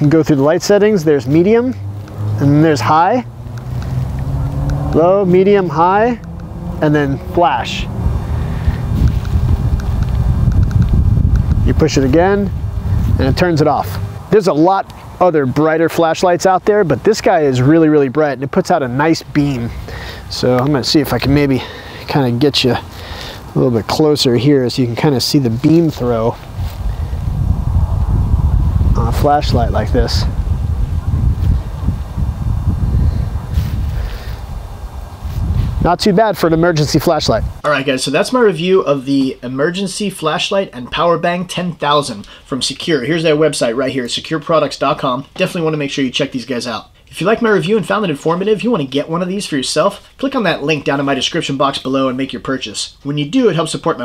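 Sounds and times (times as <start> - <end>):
wind buffeting microphone: 0.0 - 15.2, 19.3 - 37.6.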